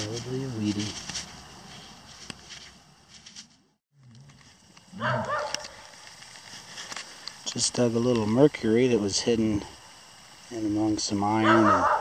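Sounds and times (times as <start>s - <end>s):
rustling of dry leaves: 0.0s - 12.0s.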